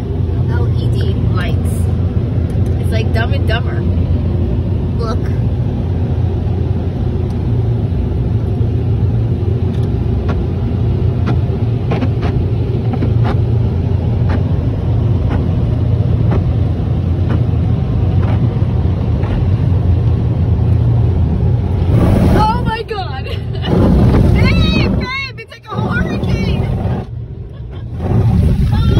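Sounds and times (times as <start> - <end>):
car wash dryers blowing air: 0.0 - 28.9.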